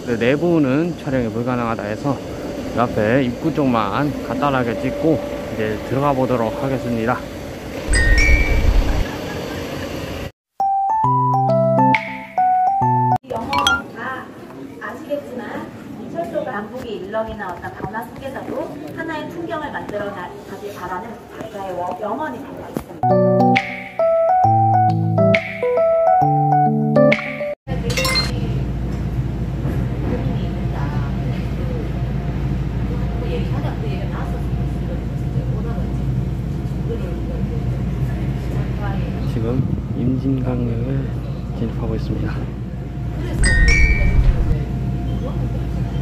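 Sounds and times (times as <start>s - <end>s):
train running rumble: 0.0s - 10.3s, 42.6s - 44.8s
piano-like keyboard tune: 7.9s - 9.1s, 10.6s - 14.0s, 23.0s - 27.6s, 43.4s - 44.6s
faint passenger voices: 29.8s - 46.0s.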